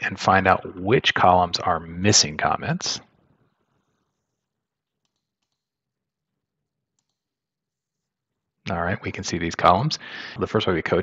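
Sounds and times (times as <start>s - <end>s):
computer mouse clicks: 4.8s - 5.8s, 6.9s - 7.3s.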